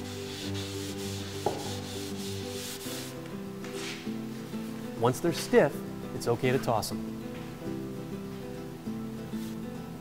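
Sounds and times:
cloth rubbing over wood: 0.0 - 4.1.

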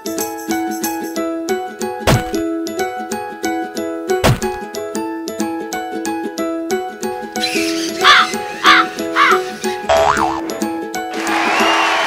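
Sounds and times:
background music: 0.0 - 12.0
cartoon crow cawing: 7.4 - 9.6
comic rising and falling sound: 7.4 - 10.6.

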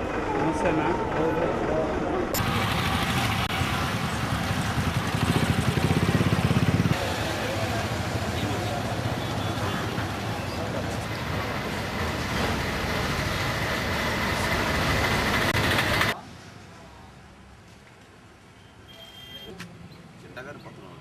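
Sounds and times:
street noise: 0.0 - 21.0
bus engine throbbing: 10.1 - 16.2.

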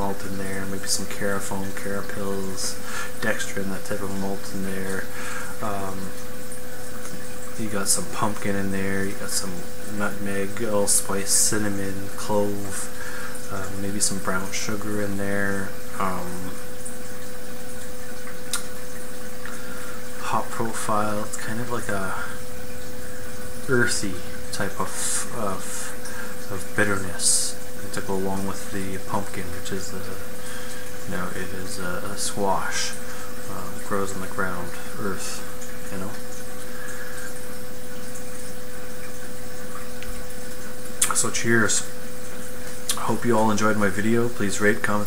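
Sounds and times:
faint constant hum tone: 0.0 - 45.0
steady hiss: 0.0 - 45.0.

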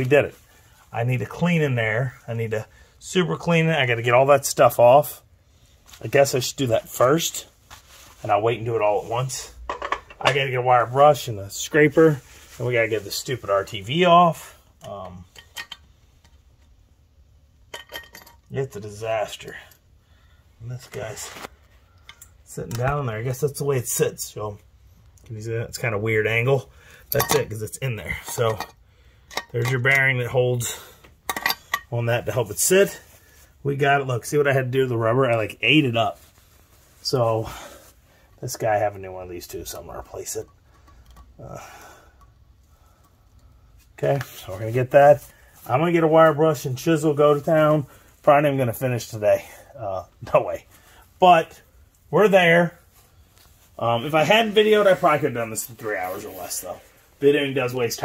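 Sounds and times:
low room hum: 0.0 - 58.0
faint handling noise: 5.7 - 20.0, 20.6 - 58.0.

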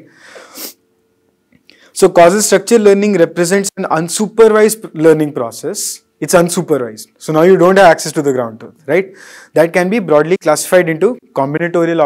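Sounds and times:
man's sharp breath in: 0.1 - 0.8, 9.1 - 9.6.

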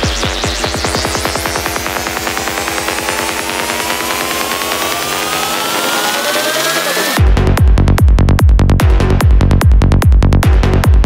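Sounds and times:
buzzing synth pulsing: 0.0 - 7.2
rising synth sweep: 0.0 - 7.2
deep bass: 0.0 - 11.0
psytrance music: 0.0 - 11.0.

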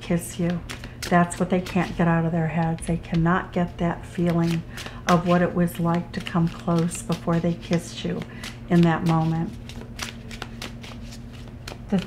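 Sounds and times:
cards being shuffled: 0.2 - 3.2, 4.2 - 12.0.

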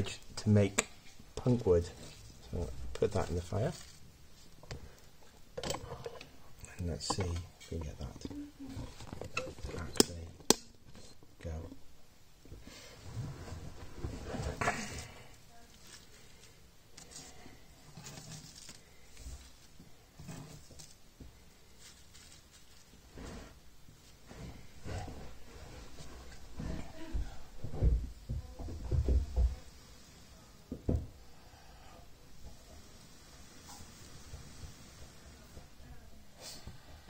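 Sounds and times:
wood shavings rustling: 21.6 - 23.6.

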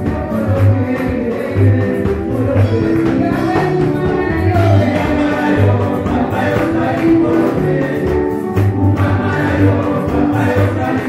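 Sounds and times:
congregation singing worship song: 0.0 - 11.0
music with strong bass line: 0.0 - 11.0.

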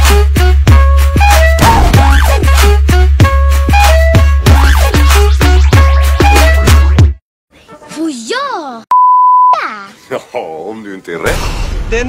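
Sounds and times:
high-pitched speech: 7.9 - 8.9, 9.5 - 10.0
censor bleep: 8.9 - 9.6.

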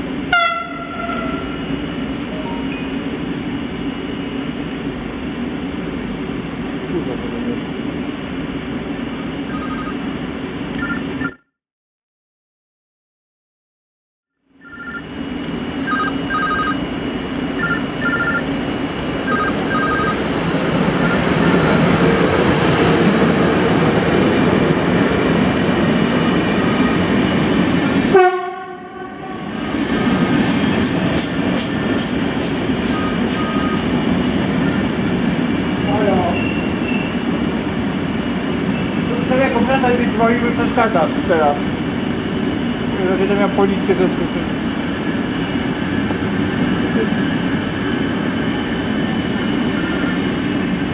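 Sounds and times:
train rumbling past on track: 0.0 - 7.6, 18.7 - 50.9.

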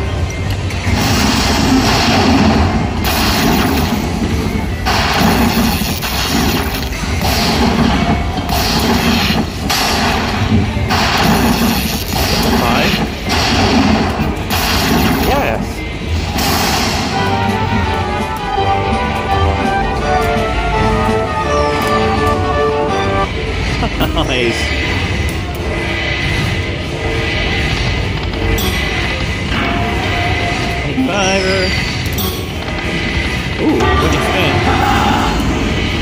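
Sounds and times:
slot machine crashing bursts: 0.9 - 15.6
slot machine music: 14.6 - 24.8, 28.4 - 34.8.

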